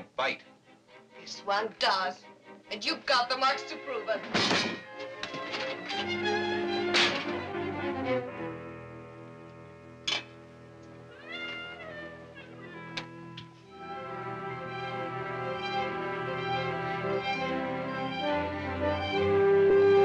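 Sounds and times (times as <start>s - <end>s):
orchestral film score: 0.0s - 11.1s, 11.8s - 20.0s.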